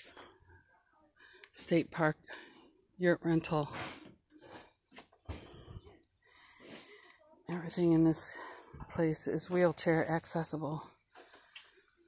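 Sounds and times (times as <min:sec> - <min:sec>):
faint breathing: 0:02.2 - 0:02.9, 0:04.4 - 0:07.3.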